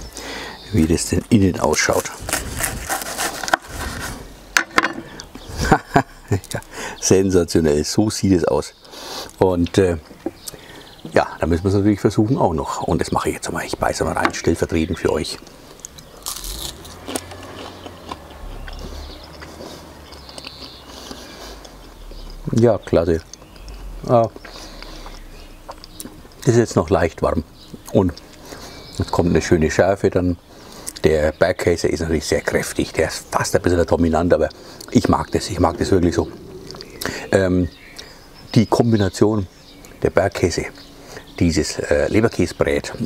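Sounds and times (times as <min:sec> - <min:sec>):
quiet chewing with crackles: 0:15.2 - 0:29.4, 0:30.4 - 0:31.4, 0:32.4 - 0:38.5
crunchy pastry bite: 0:15.8 - 0:21.8.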